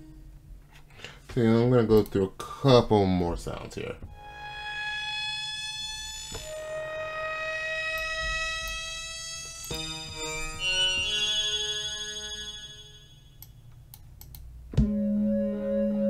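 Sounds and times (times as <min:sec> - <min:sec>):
short staggered synth notes: 0:04.1 - 0:13.6
synth pad chord: 0:14.8 - 0:16.0.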